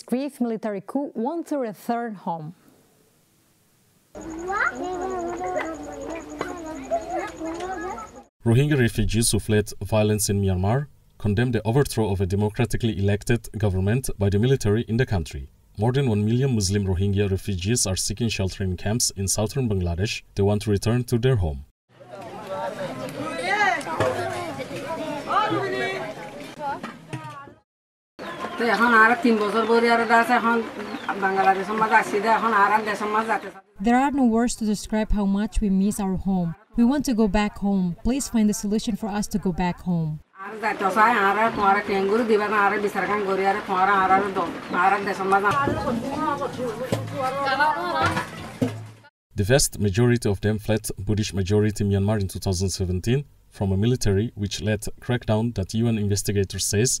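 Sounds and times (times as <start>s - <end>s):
elderly woman speaking: 28.7s - 46.2s.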